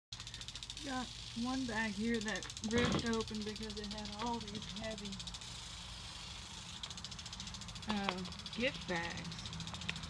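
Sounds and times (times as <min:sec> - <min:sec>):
high-pitched pulsing buzz: 0:00.6 - 0:09.8.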